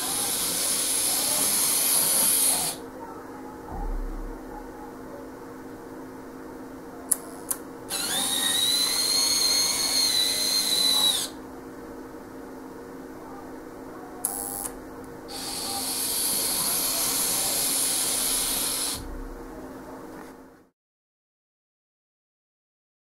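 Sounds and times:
model train motor whining: 0.0 - 2.8, 7.9 - 11.4, 15.3 - 19.0
faint steady hum: 0.0 - 20.7.

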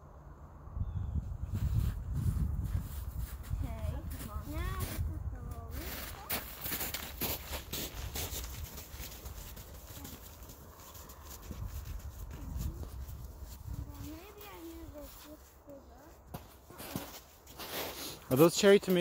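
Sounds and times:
wind rumbling on microphone: 0.6 - 15.1.

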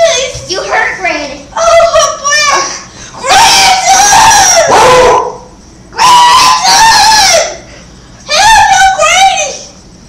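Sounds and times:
child screaming: 1.6 - 5.2, 6.0 - 7.6, 8.3 - 9.7.

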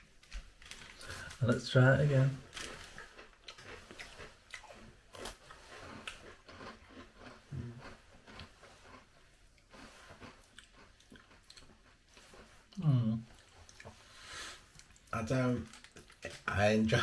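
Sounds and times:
breadsticks crunching: 0.2 - 14.0, 14.7 - 16.6.

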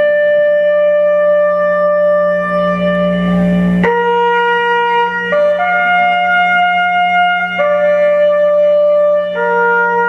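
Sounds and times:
low sustained drone: 0.0 - 10.0
wind instrument long note: 0.0 - 10.0.

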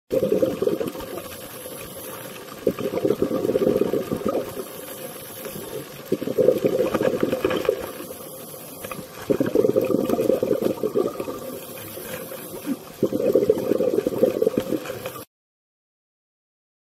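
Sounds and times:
underwater exhaled bubbles bursting: 0.1 - 15.3.

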